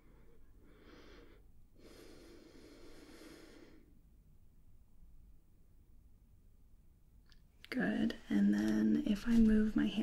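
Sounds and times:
person breathing deeply: 0:00.0 - 0:04.0.

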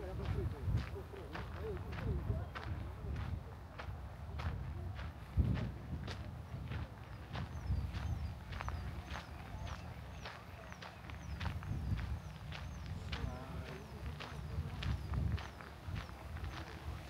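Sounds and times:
footsteps on dirt path: 0:00.0 - 0:17.0
low wind rumble: 0:00.0 - 0:17.0.

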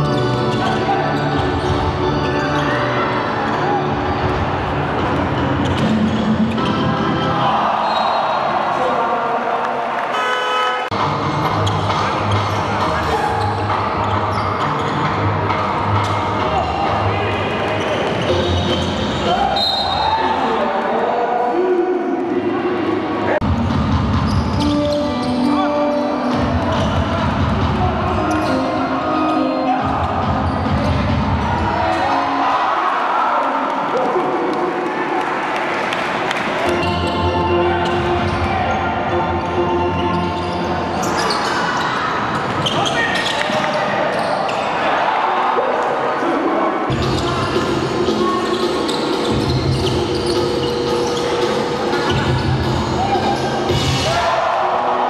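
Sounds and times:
music: 0:00.0 - 0:08.3, 0:10.9 - 0:20.4, 0:23.4 - 0:32.8, 0:36.3 - 0:41.3, 0:46.9 - 0:55.0.

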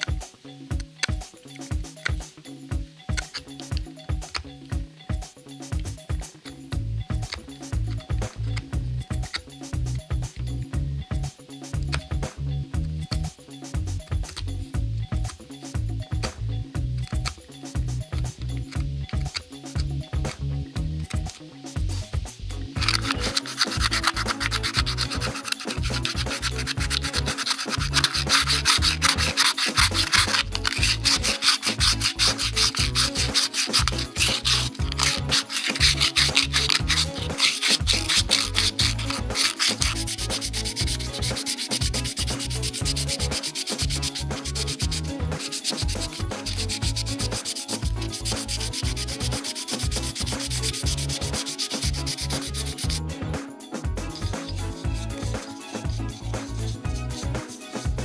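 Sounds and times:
sandpaper rubbing wood: 0:22.8 - 0:53.0.

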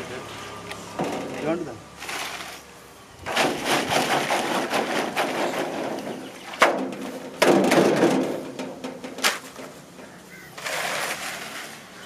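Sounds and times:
sharp knocks: 0:03.3 - 0:10.2.

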